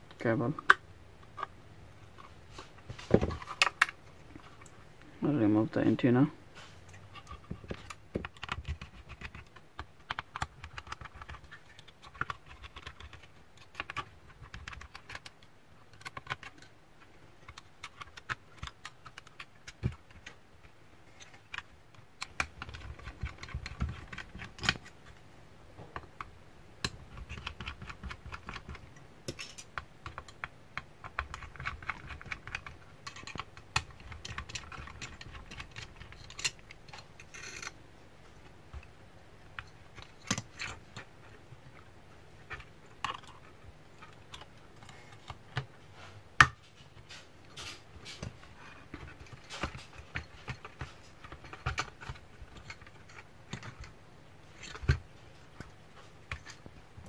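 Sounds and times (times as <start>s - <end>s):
hands clicking and tapping plastic: 7.2s - 20.4s, 21.2s - 25.2s, 25.8s - 37.8s, 46.4s - 54.0s.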